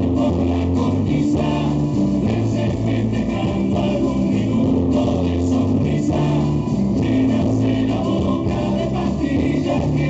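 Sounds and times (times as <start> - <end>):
acoustic guitar: 0.0 - 10.0
bass line: 0.0 - 10.0.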